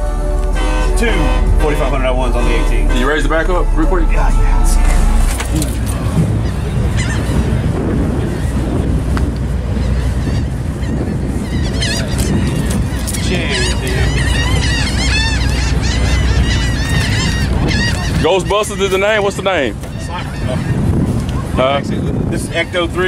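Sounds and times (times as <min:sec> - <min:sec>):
rapid honking calls: 0:00.0 - 0:07.8, 0:09.8 - 0:20.9
deep bass hum: 0:00.0 - 0:18.8.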